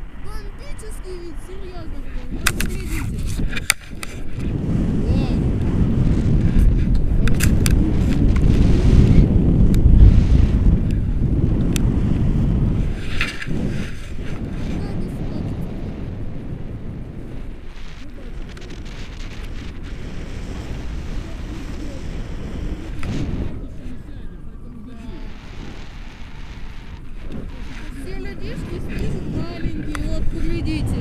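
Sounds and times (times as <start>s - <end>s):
wind buffeting microphone: 0.0s - 31.0s
camera handling clicks: 2.4s - 4.1s.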